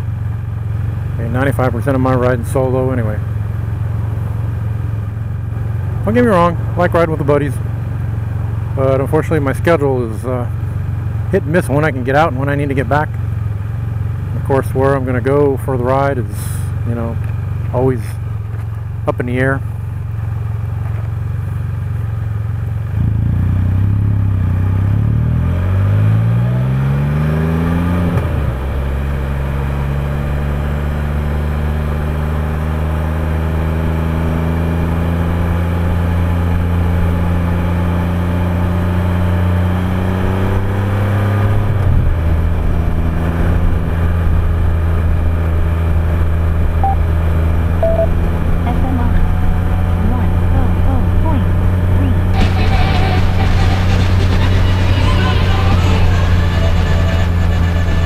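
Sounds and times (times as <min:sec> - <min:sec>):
three-wheeled motorcycle engine: 0:00.0 - 0:58.0.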